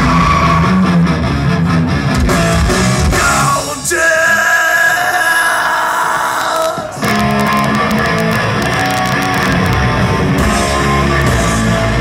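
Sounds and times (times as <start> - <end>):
crowd noise: 0.0 - 12.0
live heavy metal band: 0.0 - 12.0.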